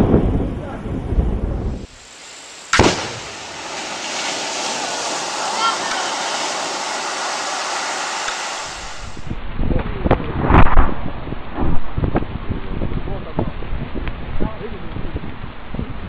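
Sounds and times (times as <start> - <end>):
water spray falling back: 1.8 - 9.4
underwater explosion bang: 2.7 - 9.4, 10.0 - 13.6
low rumble: 8.6 - 16.0.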